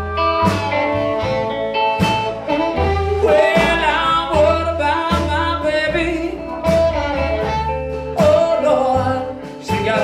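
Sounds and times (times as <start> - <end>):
electric guitar: 0.0 - 10.0
low bass line: 0.0 - 10.0
man singing into microphone: 3.2 - 7.0, 8.1 - 10.0.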